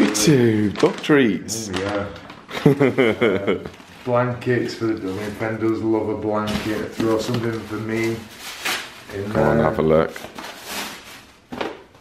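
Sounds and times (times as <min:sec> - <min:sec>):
tissue paper rustling: 0:00.0 - 0:11.6.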